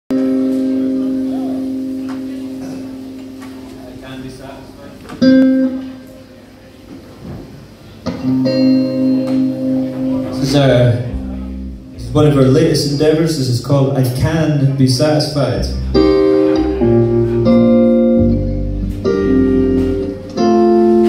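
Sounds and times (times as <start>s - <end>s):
electric guitar notes ringing: 0.1s - 6.4s, 8.0s - 13.4s, 15.5s - 21.0s.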